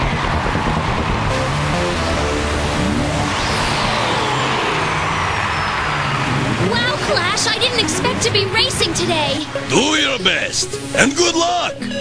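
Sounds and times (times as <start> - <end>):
rushing whoosh with whine: 0.0 - 10.0.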